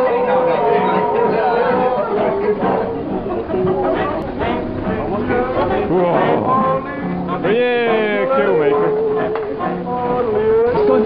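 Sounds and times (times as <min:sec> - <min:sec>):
chatter: 0:00.0 - 0:11.0
group chanting held tones: 0:00.0 - 0:11.0.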